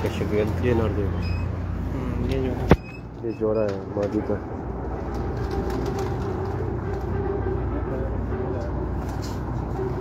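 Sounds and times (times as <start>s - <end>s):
pigeons cooing: 4.9s - 7.1s.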